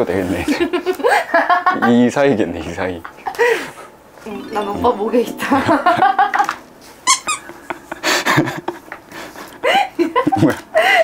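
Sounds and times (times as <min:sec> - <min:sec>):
woman laughing: 0:05.5 - 0:06.5
gasp: 0:10.8 - 0:11.0.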